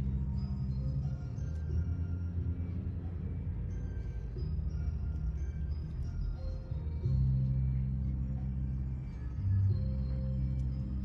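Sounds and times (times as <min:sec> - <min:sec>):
low drone: 0:00.0 - 0:11.0.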